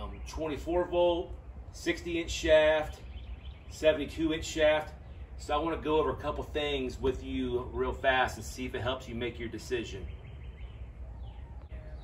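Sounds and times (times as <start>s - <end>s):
low steady rumble: 0.0s - 12.0s
faint bird calls: 2.7s - 5.4s, 9.6s - 12.0s.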